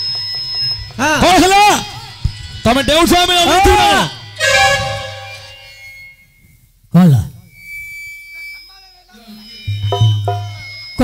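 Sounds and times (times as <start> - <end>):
loud cry falling in pitch: 3.7 - 5.8
thin steady high tone: 4.3 - 6.8, 7.5 - 11.0
held musical notes: 4.4 - 6.1.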